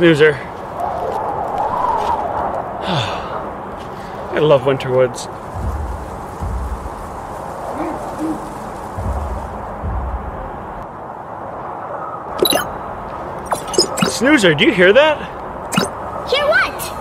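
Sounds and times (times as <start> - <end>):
outdoor hiss: 2.9 - 10.8.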